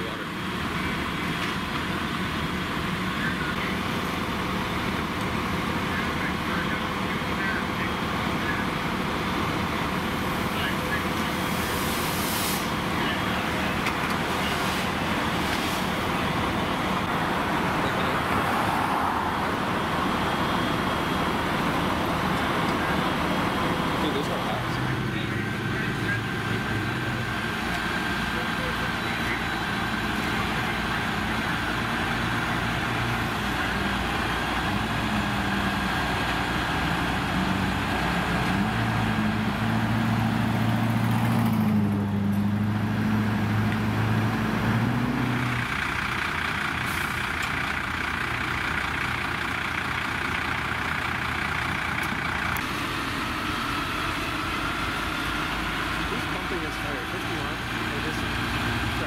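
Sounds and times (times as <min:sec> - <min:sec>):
fire engine diesel engines running: 0:00.0 - 0:59.0.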